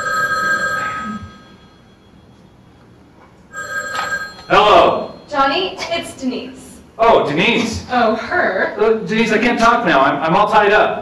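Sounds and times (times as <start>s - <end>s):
telephone ringing: 0.0s - 2.6s, 3.5s - 5.7s.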